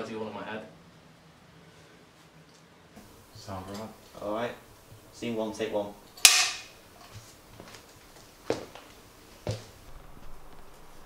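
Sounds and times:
clapperboard clacking shut: 6.2 - 6.8.

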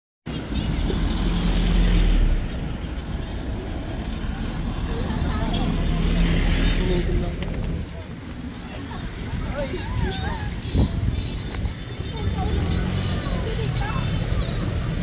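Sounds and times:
vehicles passing: 0.3 - 15.0
people talking: 4.3 - 15.0.

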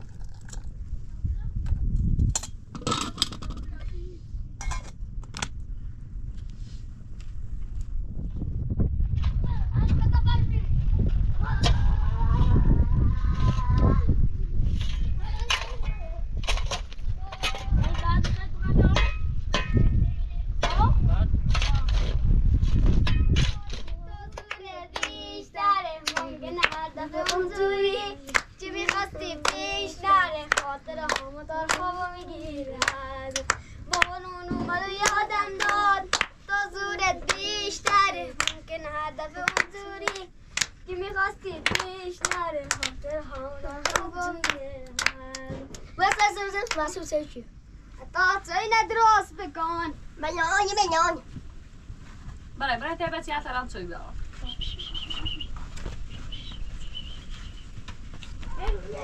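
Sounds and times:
low rumble: 0.0 - 59.0
boys singing together: 24.0 - 47.1
hands clapping in rhythm: 24.4 - 25.2, 26.0 - 27.5, 28.2 - 29.7, 30.5 - 31.9, 32.8 - 34.2, 35.0 - 36.4, 37.2 - 38.6, 39.4 - 40.8, 41.6 - 47.0.

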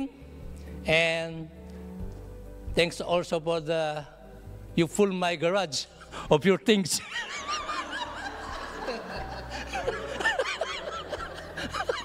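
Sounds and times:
man and woman laughing: 7.0 - 12.0.

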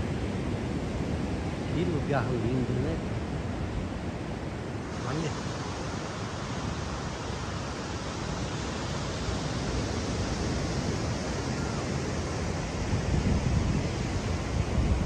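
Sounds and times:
ocean surf on a beach: 0.0 - 15.0
wind buffeting microphone: 0.0 - 15.0.

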